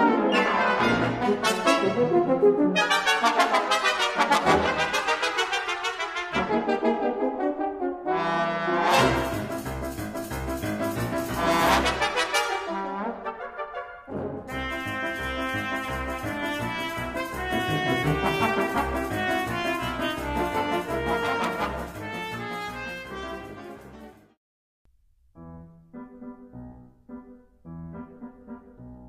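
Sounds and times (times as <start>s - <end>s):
brass ensemble playing lively music: 0.0s - 24.2s.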